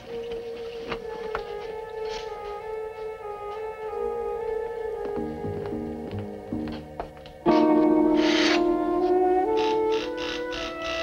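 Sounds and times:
orchestral film score chord: 0.0 - 11.0.

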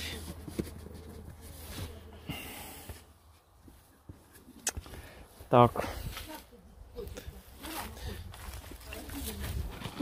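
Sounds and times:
footsteps on gravel and leaves: 5.8 - 10.0.

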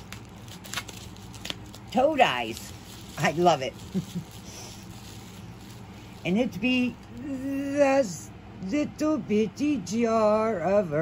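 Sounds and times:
rustles: 0.0 - 7.6
low steady hum: 0.0 - 11.0.

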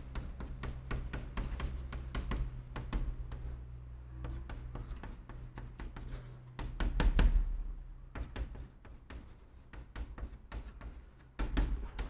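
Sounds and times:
chalk writing on a blackboard: 0.0 - 7.4, 8.1 - 12.0.

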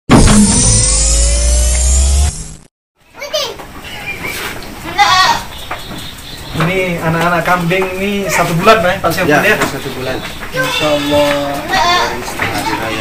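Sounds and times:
deep hum: 0.1 - 2.7
electronic rising tones: 0.1 - 2.7
goat kid bleating: 4.8 - 5.5, 8.2 - 8.9, 10.5 - 13.0.

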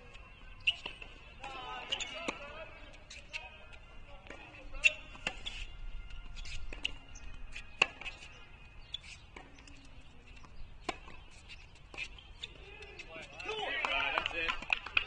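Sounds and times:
tennis ball struck by racket: 0.6 - 3.4, 4.2 - 8.3, 9.3 - 13.0.

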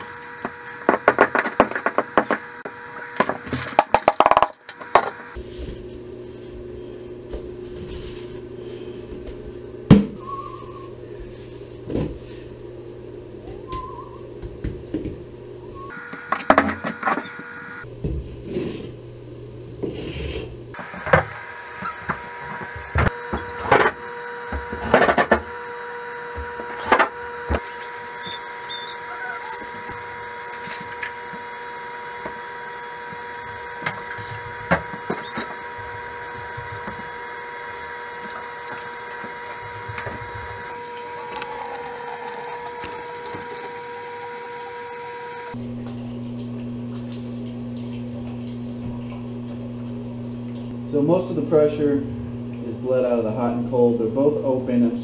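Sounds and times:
steady hum: 0.0 - 55.0.

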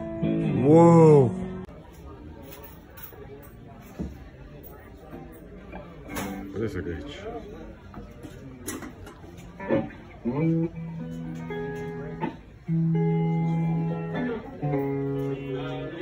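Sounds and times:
guitar playing long held notes: 0.0 - 1.7, 9.6 - 16.0.

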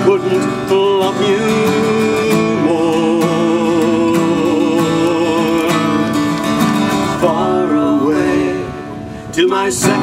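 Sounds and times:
acoustic guitar playing: 0.0 - 10.0.

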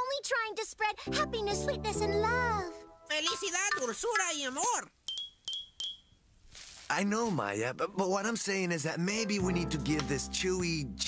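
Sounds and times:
cartoon chime tings: 5.1 - 6.2.

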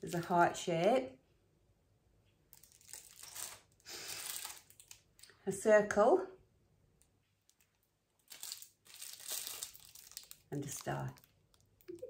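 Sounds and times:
plastic packaging crinkling: 2.5 - 5.3, 7.4 - 12.0.

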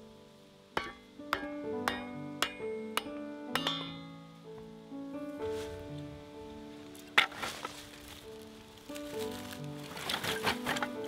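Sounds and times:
soft background music: 0.0 - 11.0
hammer knocks with metallic ring: 0.8 - 4.1.

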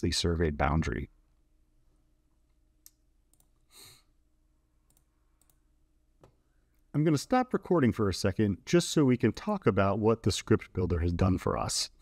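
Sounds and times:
computer mouse clicks: 2.8 - 3.6, 4.9 - 5.6
short breath: 3.7 - 4.1.

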